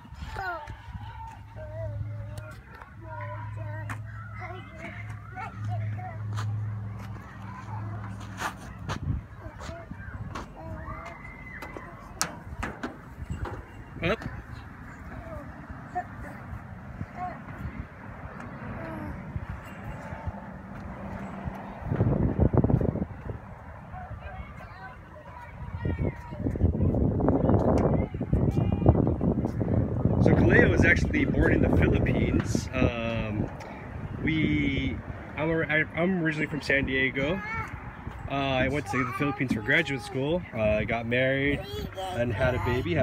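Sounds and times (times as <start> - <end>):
distant voices: 0.0 - 43.0
child's voice: 0.2 - 6.6, 9.3 - 12.2, 15.1 - 17.8, 18.5 - 19.3, 24.2 - 29.0, 37.4 - 37.8, 38.6 - 40.3, 41.5 - 43.0
footsteps on metal deck: 2.4 - 15.3.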